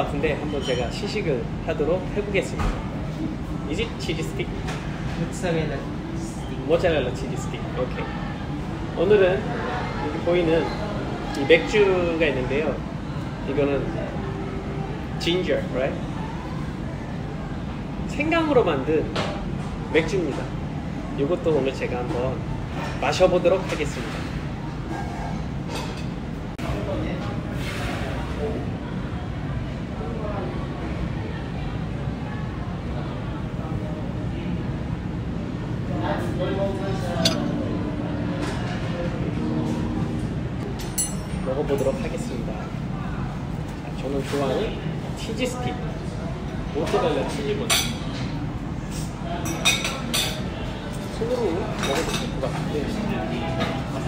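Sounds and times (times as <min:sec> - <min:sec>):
cutlery clinking on plates: 0:37.2 - 0:37.6.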